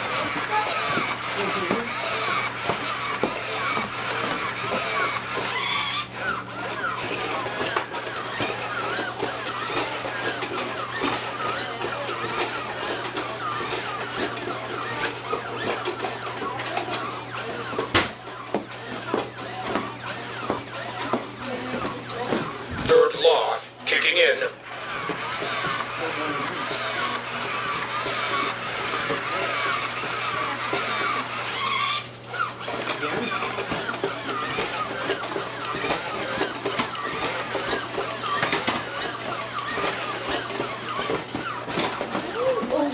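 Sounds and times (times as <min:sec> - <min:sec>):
toy robot gear motors whirring: 0:00.0 - 0:23.4, 0:24.1 - 0:42.9.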